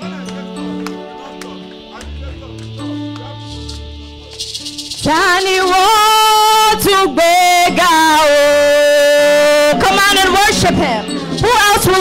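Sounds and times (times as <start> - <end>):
shaker rattling: 2.7 - 6.8, 11.1 - 12.0.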